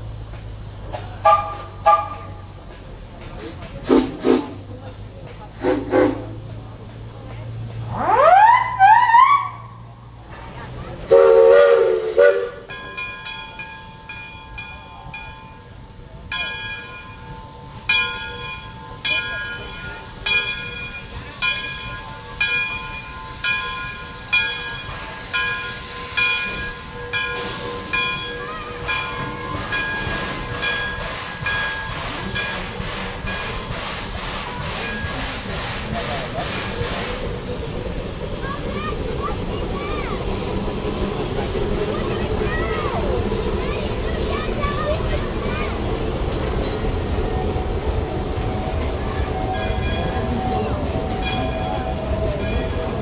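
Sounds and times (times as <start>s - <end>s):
steam whistle toots: 1.2s - 2.3s, 11.1s - 12.7s
steam hissing: 3.3s - 4.8s, 5.5s - 6.6s, 11.0s - 12.7s, 20.0s - 53.0s
locomotive bell ringing: 12.4s - 35.5s, 37.5s - 53.0s.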